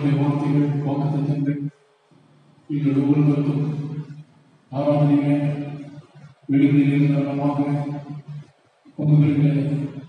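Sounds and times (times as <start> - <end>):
man chanting through a microphone: 0.0 - 1.8, 2.7 - 10.0.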